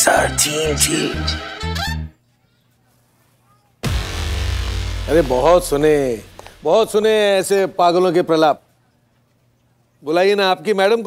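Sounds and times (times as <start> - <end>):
loud boom: 3.8 - 7.8.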